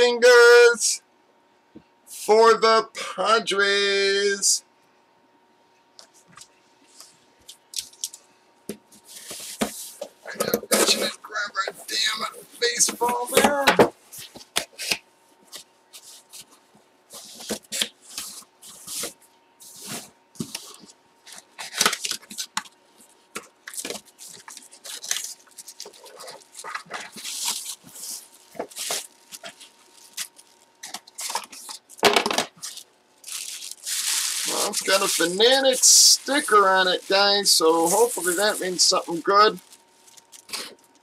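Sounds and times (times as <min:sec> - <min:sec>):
wrapping rustling and crinkling: 0:08.8 - 0:41.0.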